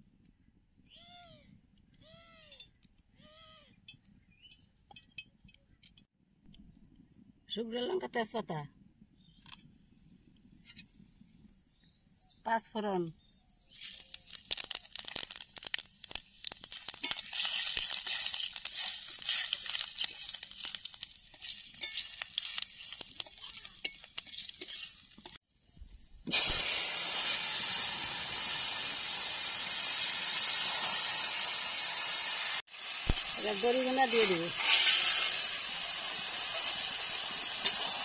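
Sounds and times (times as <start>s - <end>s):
vegetables sizzling in a wok: 13.6s - 25.4s, 26.2s - 38.0s
seeds crackling in hot oil: 13.6s - 25.5s, 26.1s - 38.0s
spatula stirring in a wok: 16.7s - 25.4s, 34.0s - 35.6s.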